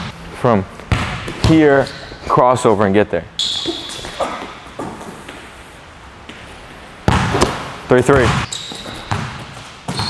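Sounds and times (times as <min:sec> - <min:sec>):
basketball slamming: 0:00.9 - 0:01.8, 0:07.1 - 0:10.0.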